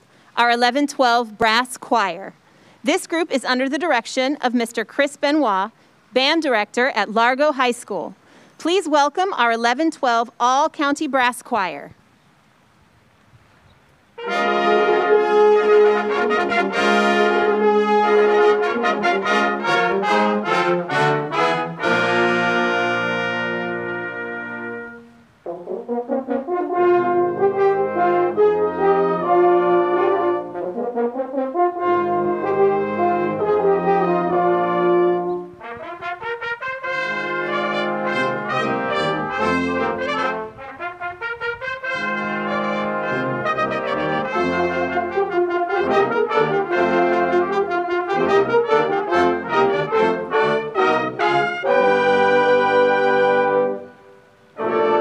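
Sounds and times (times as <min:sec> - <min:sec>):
brass choir playing: 0:14.2 - 0:55.0.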